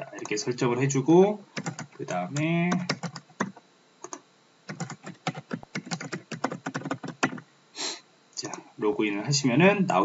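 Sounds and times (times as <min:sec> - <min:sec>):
keyboard typing: 0:01.5 - 0:07.4.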